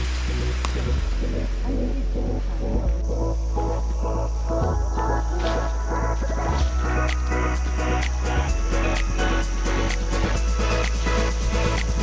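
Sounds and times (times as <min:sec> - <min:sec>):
electronic music with deep bass: 0:00.0 - 0:12.0.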